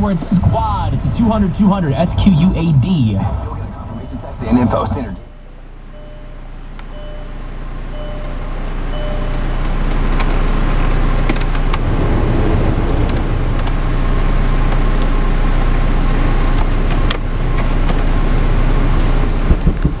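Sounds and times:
heater blower fan rushing: 0.0s - 20.0s
low idle hum: 0.0s - 20.0s
short beeps: 3.7s - 9.6s.

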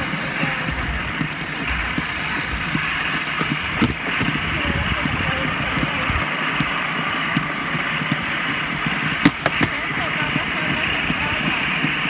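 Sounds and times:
rail cart rumbling on track: 0.0s - 12.0s
sharp clacks: 0.0s - 12.0s.

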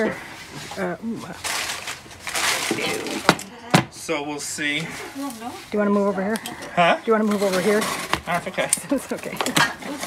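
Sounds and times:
rustling and scraping on a counter: 7.2s - 10.0s.

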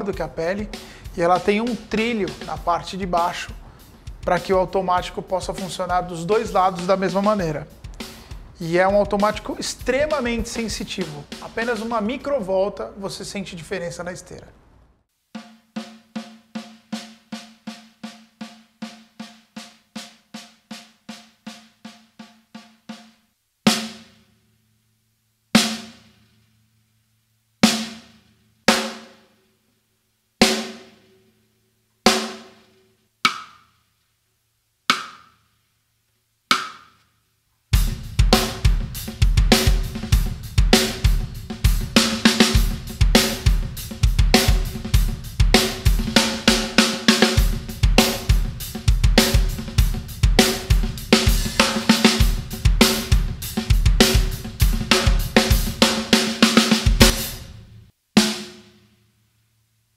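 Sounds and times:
snare drum strokes ringing: 0.0s - 12.2s, 33.2s - 33.7s, 34.9s - 35.4s, 36.5s - 37.0s, 37.9s - 57.6s
drum kit groove: 0.0s - 13.6s, 15.3s - 24.3s, 27.6s - 29.2s, 30.4s - 31.0s, 32.1s - 33.6s, 37.7s - 58.7s.

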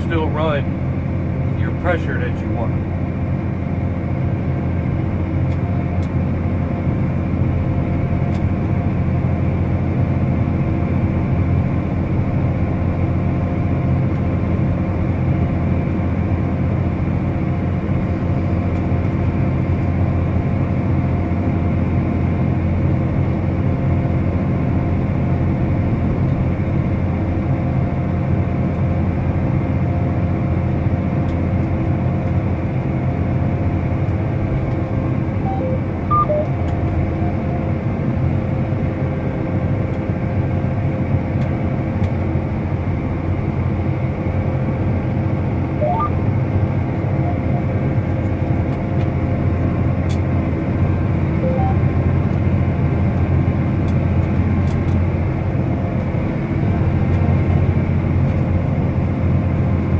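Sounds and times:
tractor diesel engine drone: 0.0s - 59.9s
faint short high tones: 35.4s - 36.5s, 45.8s - 46.2s, 51.4s - 51.8s.

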